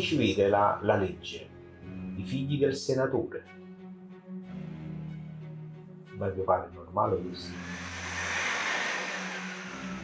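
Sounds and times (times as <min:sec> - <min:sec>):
low music drone: 0:03.5 - 0:10.0
rushing whoosh with falling tone: 0:07.5 - 0:10.0.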